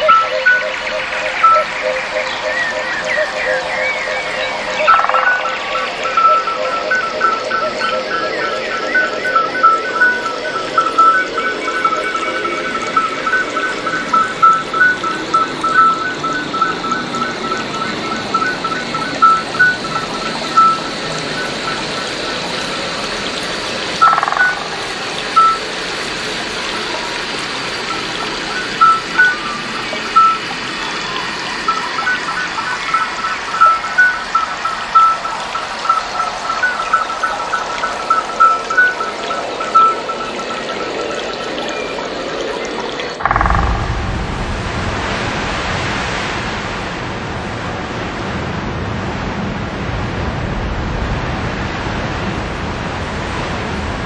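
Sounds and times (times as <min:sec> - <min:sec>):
high chirping beeps: 0:00.0 - 0:22.1, 0:24.0 - 0:25.6, 0:28.2 - 0:30.5, 0:31.6 - 0:41.0, 0:43.2 - 0:44.8
ambient synth wash: 0:00.0 - 0:47.4.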